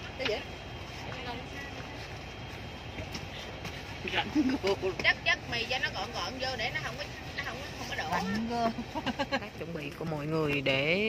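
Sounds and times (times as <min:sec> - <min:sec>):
bus interior rumble: 0:00.0 - 0:11.0.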